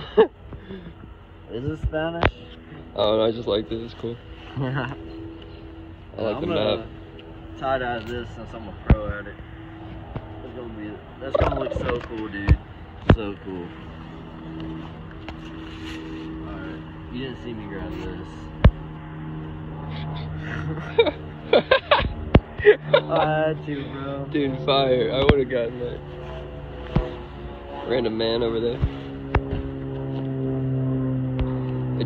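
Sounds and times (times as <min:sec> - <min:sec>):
low mechanical hum: 0:00.0 - 0:32.0.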